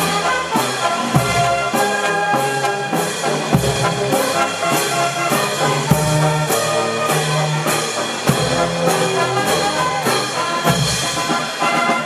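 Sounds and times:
brass band playing: 0.0s - 12.0s
steady drum beat: 0.0s - 12.0s.

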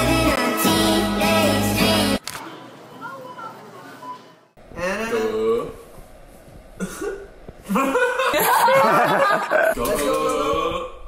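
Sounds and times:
young men laughing and exclaiming: 7.7s - 10.6s.

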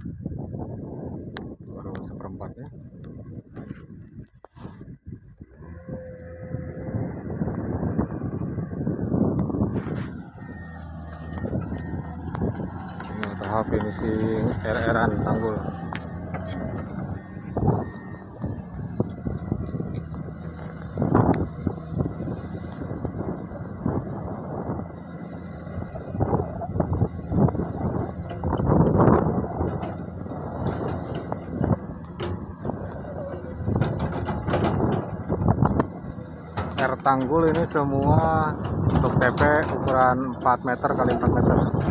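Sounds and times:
excavator diesel engine running: 5.2s - 41.9s.

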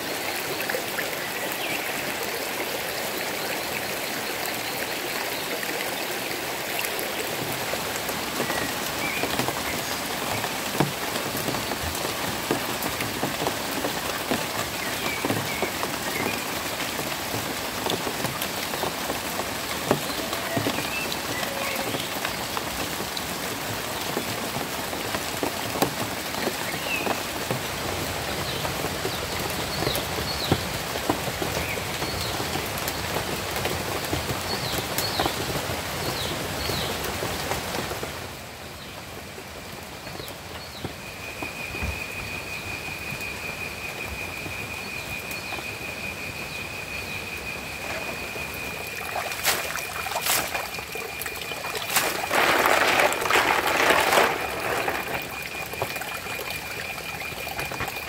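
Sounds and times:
steady rain falling: 0.0s - 58.0s.

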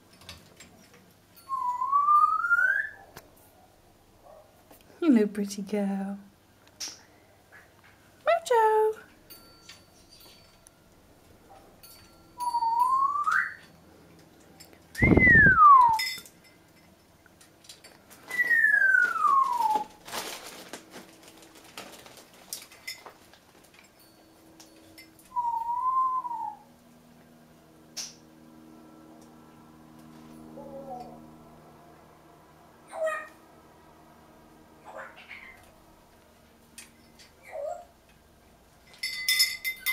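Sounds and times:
parrot whistling: 1.5s - 3.0s, 12.4s - 13.7s, 15.0s - 16.0s, 18.3s - 19.9s, 25.3s - 26.7s
metallic clinks of toys: 9.2s - 10.9s, 11.8s - 13.0s, 16.0s - 17.1s, 38.8s - 39.9s.

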